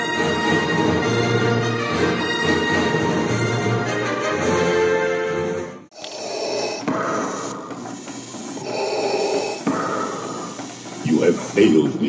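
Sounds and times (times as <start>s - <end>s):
orchestral music with brass: 0.0s - 5.9s
mechanical respirator breathing: 5.9s - 12.0s.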